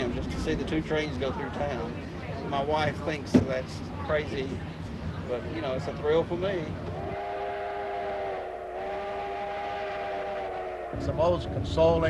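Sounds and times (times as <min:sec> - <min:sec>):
steam locomotive chime whistle: 0:07.0 - 0:11.2.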